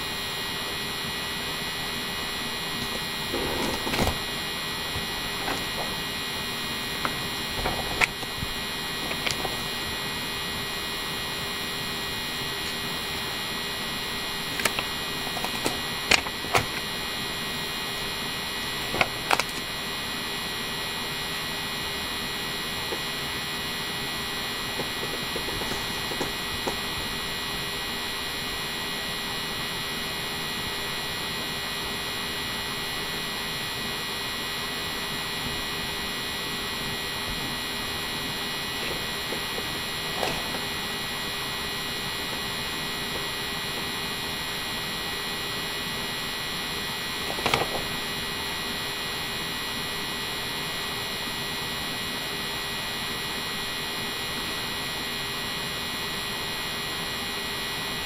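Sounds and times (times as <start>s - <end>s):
electrical hum and hiss: 0.0s - 58.0s.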